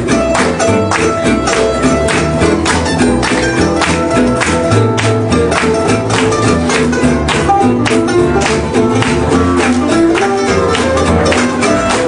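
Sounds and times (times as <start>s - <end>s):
guitar chords strummed: 0.0s - 12.0s
plucked string melody: 0.0s - 12.0s
walking bass line: 0.0s - 12.0s.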